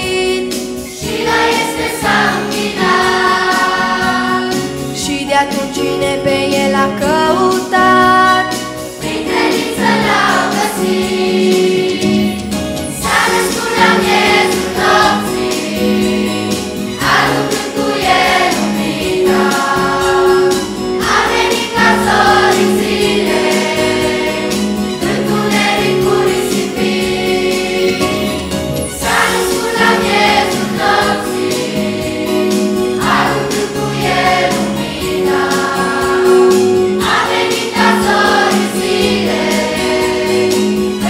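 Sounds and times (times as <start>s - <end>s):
children's choir singing a carol: 0.0s - 5.1s, 8.4s - 28.4s, 29.0s - 41.0s.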